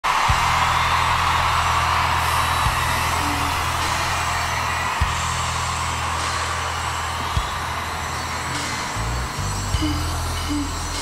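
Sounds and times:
arena crowd noise: 0.0s - 11.0s
deep bass drone: 0.1s - 11.0s.

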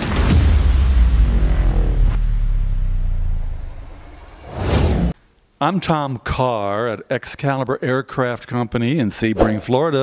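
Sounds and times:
deep rumble with whoosh: 0.0s - 5.2s.

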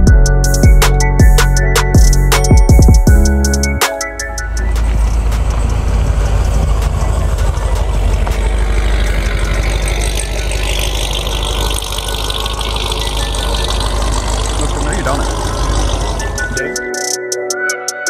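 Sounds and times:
car engine running: 0.0s - 18.0s
tyres on gravel: 3.8s - 17.1s.

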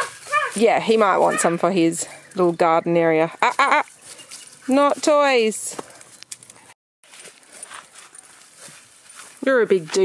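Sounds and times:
rustling of grass and leaves: 0.0s - 10.0s.

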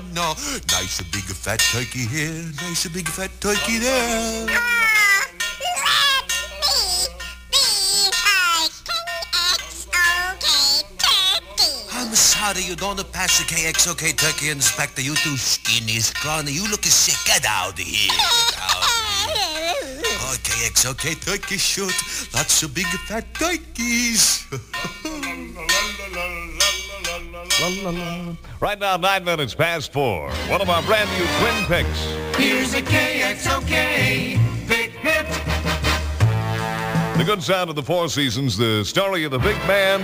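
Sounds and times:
sped-up comic voices babbling: 3.9s - 12.5s, 18.0s - 20.7s
wordless wavering voice: 9.3s - 12.6s.

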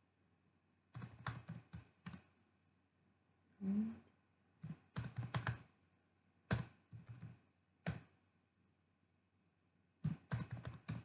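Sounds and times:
keyboard typing: 0.9s - 2.3s, 4.6s - 5.7s, 6.4s - 8.2s, 10.0s - 11.0s.

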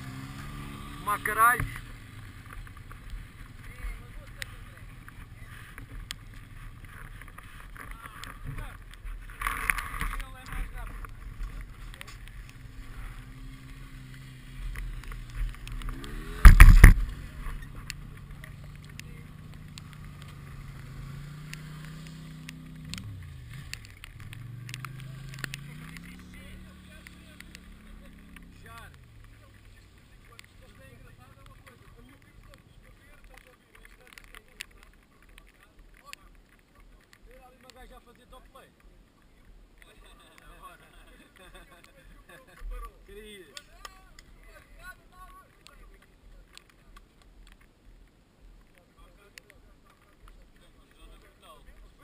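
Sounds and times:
engine revving: 0.0s - 6.8s, 11.6s - 31.8s
quad bike engines idling: 0.0s - 47.2s
loud thump: 16.3s - 17.1s.

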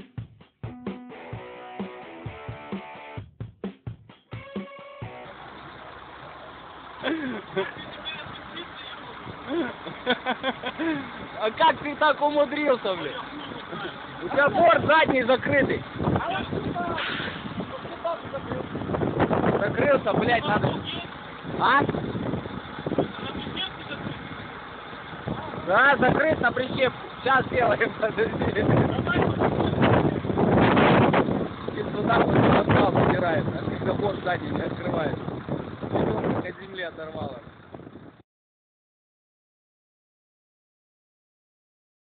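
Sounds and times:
truck engine running: 4.4s - 38.2s.

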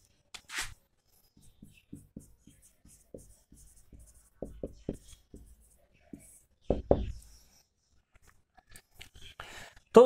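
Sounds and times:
marker writing on whiteboard: 0.5s - 7.8s.

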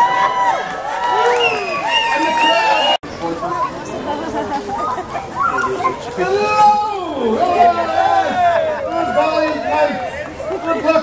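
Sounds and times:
crowd chatter: 0.0s - 11.0s.

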